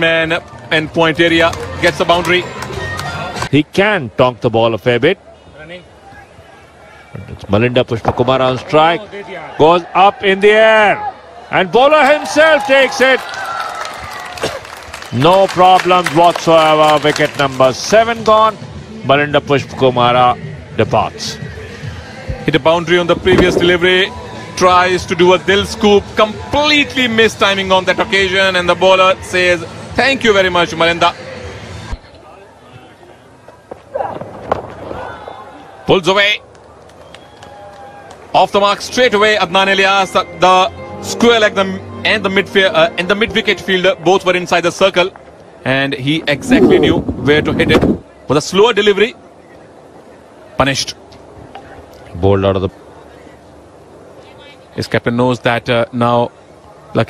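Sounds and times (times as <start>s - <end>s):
stadium field noise: 0.0s - 57.0s
man's voice: 17.5s - 31.3s, 38.6s - 45.1s.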